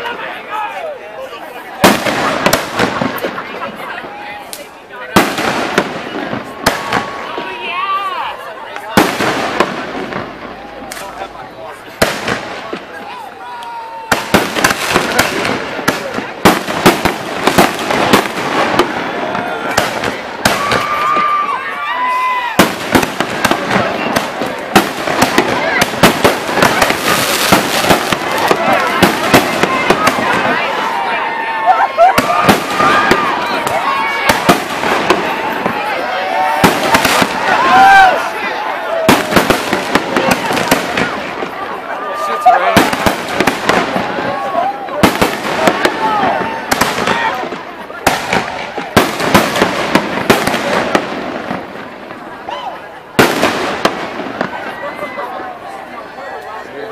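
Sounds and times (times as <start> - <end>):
fireworks bangs and crackling: 0.0 - 56.9.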